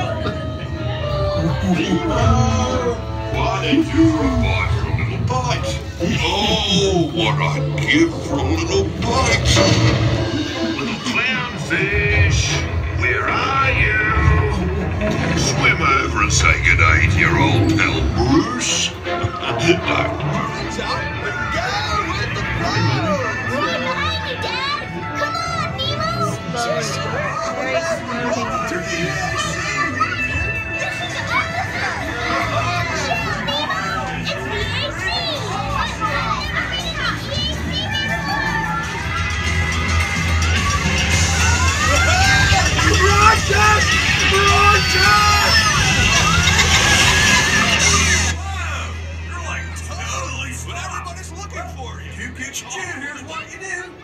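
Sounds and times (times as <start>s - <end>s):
voices calling out: 0.0s - 52.4s
background music: 0.0s - 54.0s
children calling out: 29.3s - 48.4s.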